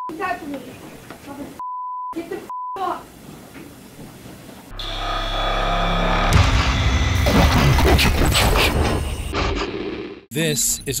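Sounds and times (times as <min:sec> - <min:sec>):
heavy cinematic hit: 0:04.7 - 0:09.3.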